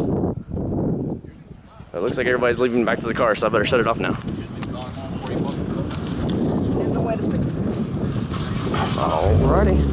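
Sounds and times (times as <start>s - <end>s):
people talking: 1.3s - 7.4s, 8.8s - 9.9s
footsteps on wet dirt road: 4.1s - 8.7s.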